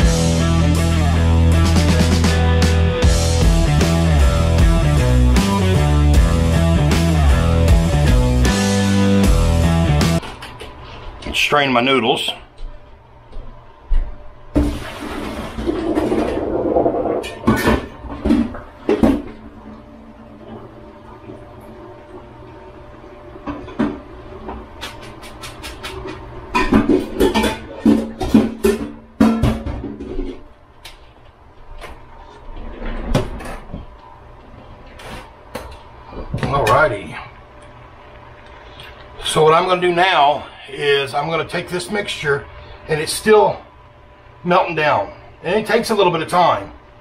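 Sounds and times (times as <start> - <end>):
pots and utensils clanking: 24.8 - 30.5.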